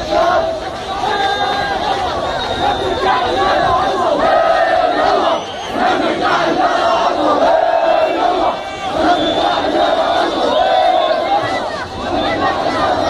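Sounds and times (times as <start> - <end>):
crowd shouting slogans: 0.0 - 13.0.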